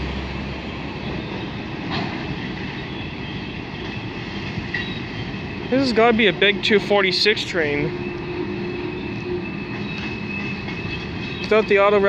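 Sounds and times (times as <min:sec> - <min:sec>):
train cars rumbling on rails: 0:00.0 - 0:12.0
high-pitched wheel squeal: 0:04.7 - 0:12.0.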